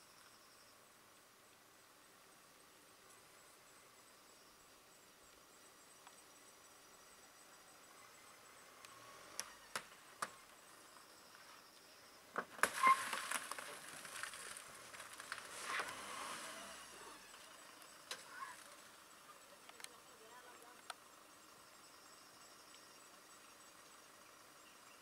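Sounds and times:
elephant rustling and scraping: 12.5s - 19.1s.

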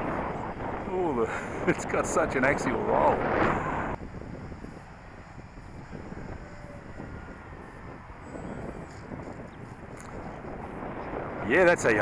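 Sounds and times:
distant model plane motor whine: 0.0s - 11.5s
wind noise on microphone: 0.0s - 12.0s.

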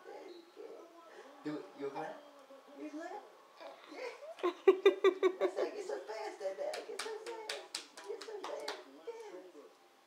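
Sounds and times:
man clapping hands: 6.7s - 8.9s.

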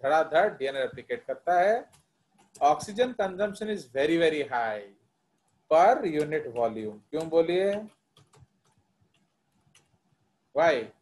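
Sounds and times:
faint keyboard keystrokes: 5.4s - 10.0s.

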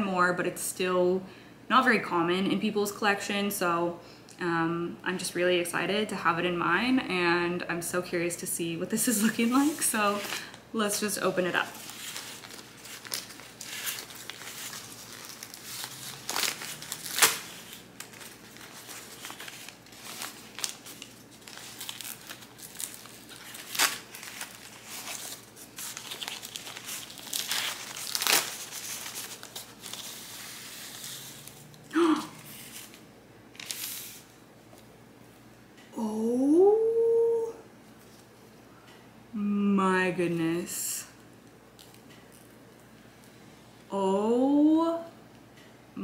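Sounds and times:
packaging crinkling and ripping: 11.5s - 31.8s, 32.4s - 34.3s.

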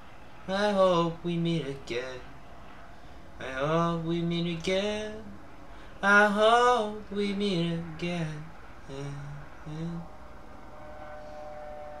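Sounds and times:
microphone hiss and hum: 0.0s - 10.8s
high two-tone whine: 0.0s - 12.0s
man singing: 0.5s - 2.3s, 3.4s - 5.4s, 6.0s - 10.1s.

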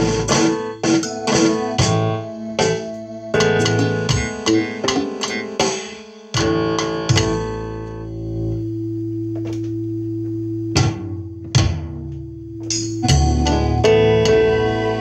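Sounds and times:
piano playing: 0.0s - 8.4s, 12.7s - 15.0s.

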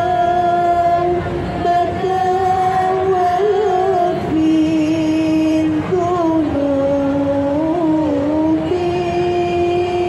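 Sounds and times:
woman chanting through microphone: 0.0s - 10.0s.

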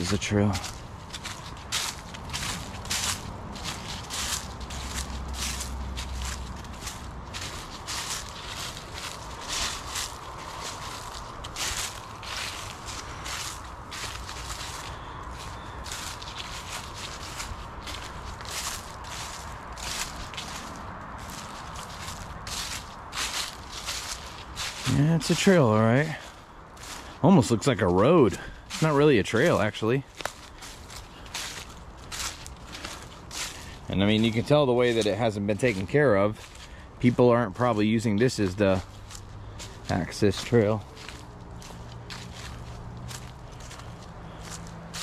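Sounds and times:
footsteps crunching dry leaves: 0.0s - 45.0s.

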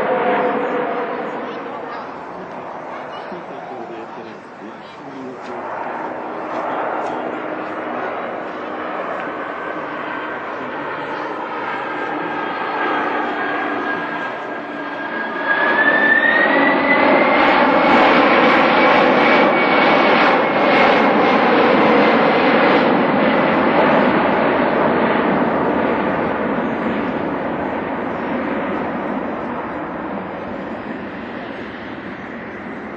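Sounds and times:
jet engines roaring in flight: 0.0s - 32.9s.

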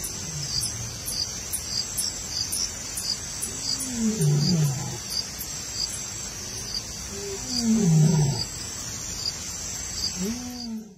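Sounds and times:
night insects chorus: 0.0s - 10.9s
repeated insect chirps: 0.0s - 10.9s
large animal low call: 7.1s - 8.5s, 10.2s - 10.9s.

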